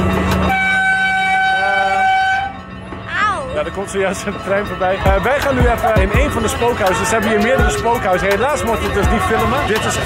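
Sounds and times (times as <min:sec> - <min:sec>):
train horn toot: 0:00.4 - 0:02.8
lower horn note: 0:00.5 - 0:02.6.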